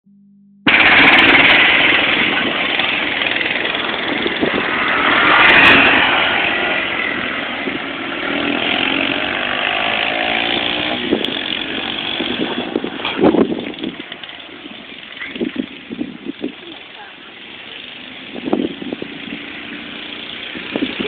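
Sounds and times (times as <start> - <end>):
quad bike engines revving: 0.7 - 21.0.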